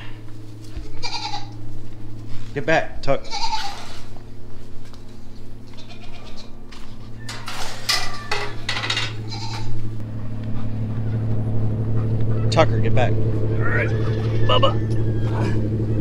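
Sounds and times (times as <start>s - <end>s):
steady low hum: 0.0s - 16.0s
goats bleating: 0.8s - 1.6s, 3.1s - 4.2s, 5.6s - 6.6s, 9.1s - 9.8s.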